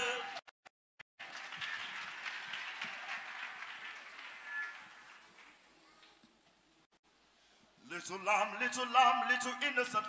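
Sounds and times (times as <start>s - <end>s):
congregation applauding: 1.2s - 5.7s.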